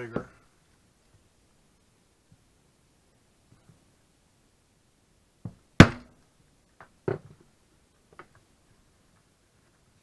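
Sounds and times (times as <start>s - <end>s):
mallet striking leather punch: 5.8s - 6.1s.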